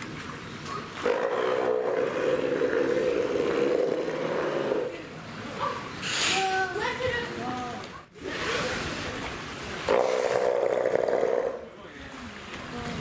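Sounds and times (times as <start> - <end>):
water splashing: 0.0 - 13.0
sea lion roaring: 1.0 - 5.1, 9.8 - 11.7.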